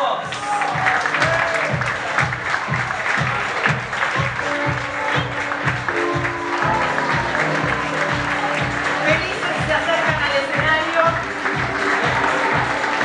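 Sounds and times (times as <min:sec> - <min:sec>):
background music with steady beat: 0:00.0 - 0:13.0
audience applauding: 0:00.2 - 0:13.0.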